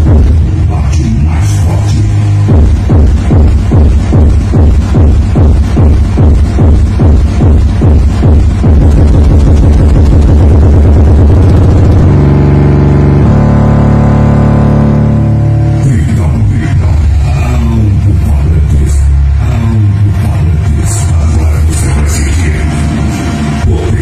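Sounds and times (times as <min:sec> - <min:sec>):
bass-heavy electronic music: 0:00.0 - 0:24.0.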